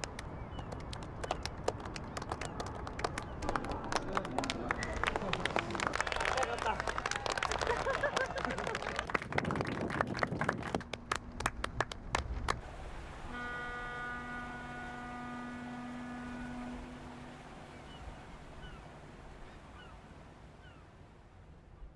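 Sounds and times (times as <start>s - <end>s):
people clapping: 0.0s - 12.6s
ship's horn blast: 12.8s - 19.8s.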